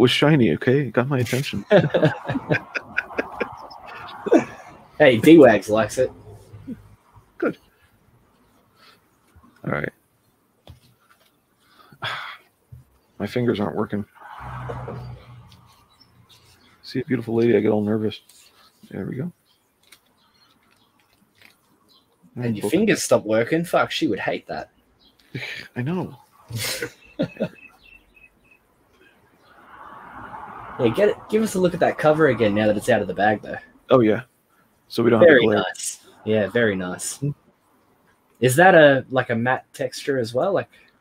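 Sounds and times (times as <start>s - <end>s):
man chuckling: 1.2s - 4.7s, 12.0s - 12.4s, 25.4s - 25.8s, 26.5s - 27.6s
plastic and paper crinkling: 19.8s - 21.8s.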